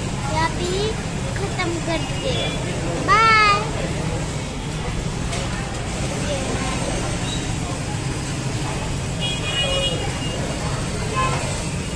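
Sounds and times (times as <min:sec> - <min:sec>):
road traffic rumbling: 0:00.0 - 0:11.9
vehicle horn: 0:09.2 - 0:10.4.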